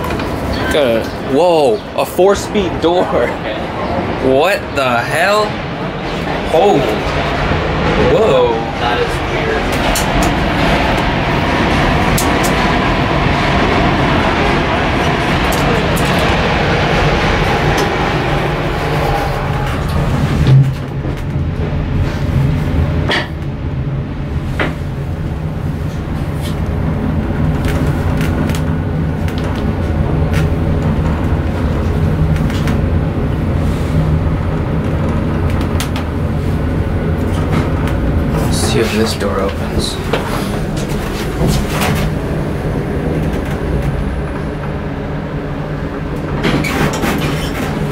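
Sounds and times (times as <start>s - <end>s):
elevator car humming: 0.0s - 47.9s.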